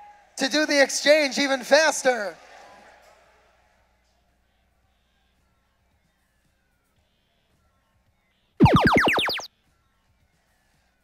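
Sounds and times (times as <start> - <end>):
synthesized tone sweeping upward: 8.6 - 9.5.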